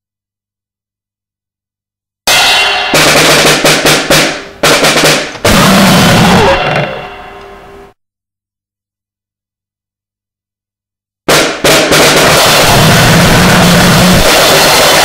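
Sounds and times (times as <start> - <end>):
harsh drumming and noise: 2.3 - 7.3, 11.3 - 15.0.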